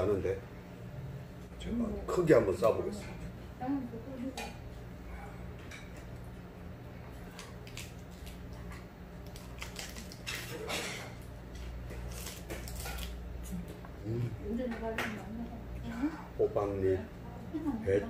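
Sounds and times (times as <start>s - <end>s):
low steady hum: 0.0s - 18.0s
lettuce leaves rustling: 9.2s - 11.0s, 11.9s - 13.2s
crunch of biting lettuce wrap: 9.2s - 11.1s.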